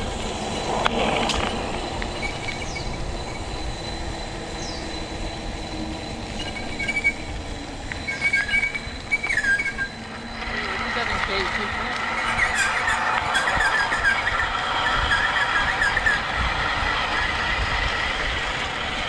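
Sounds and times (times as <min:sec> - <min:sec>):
bike tyre and wind rumble: 0:00.0 - 0:19.0
short high-pitched squeals: 0:05.8 - 0:07.4, 0:08.0 - 0:18.2.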